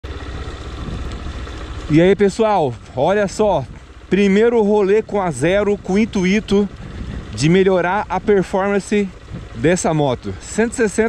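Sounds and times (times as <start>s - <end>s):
motorcycle engine rumbling: 0.0s - 11.0s
tyre noise on dirt road: 0.0s - 11.0s
wind noise: 0.8s - 1.4s, 5.0s - 9.7s.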